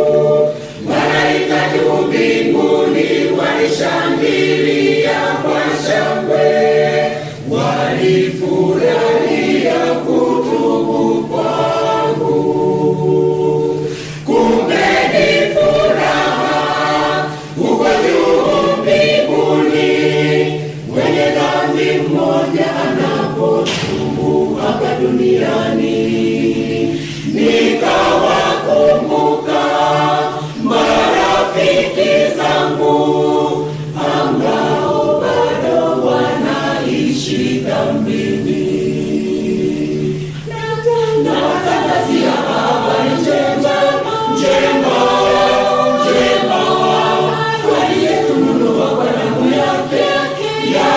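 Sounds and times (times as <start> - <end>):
mixed choir singing a hymn: 0.0 - 50.9.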